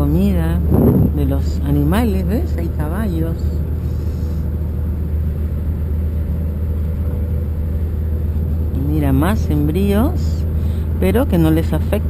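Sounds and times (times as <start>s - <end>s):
vehicle rumble from inside cabin: 0.0s - 12.0s.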